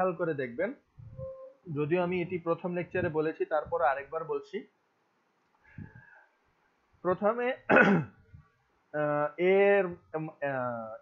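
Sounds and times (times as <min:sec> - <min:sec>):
person clearing throat: 0:07.7 - 0:08.2.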